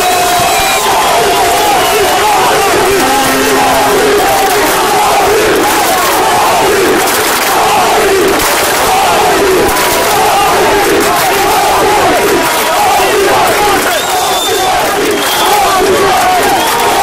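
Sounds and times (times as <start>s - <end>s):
crowd chanting and shouting: 0.0s - 17.0s.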